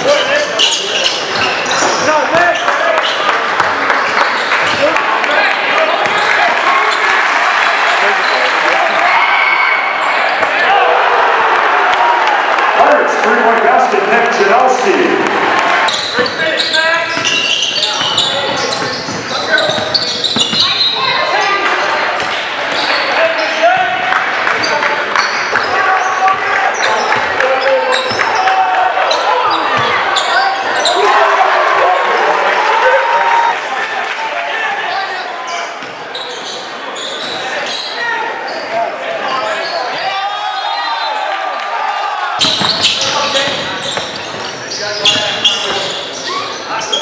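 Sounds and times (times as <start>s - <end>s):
crowd chatter and shouts: 0.0s - 47.0s.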